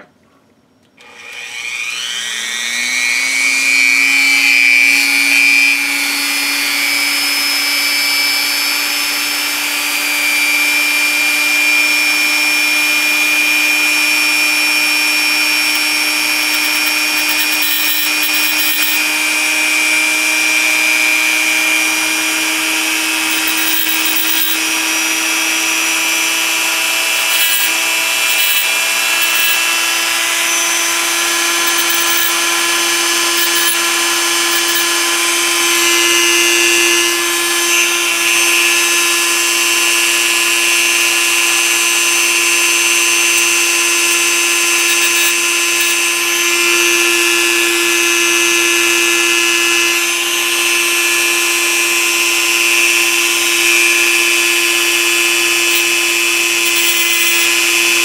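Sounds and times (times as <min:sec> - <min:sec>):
rotary tool grinding steel: 0:01.1 - 0:58.0.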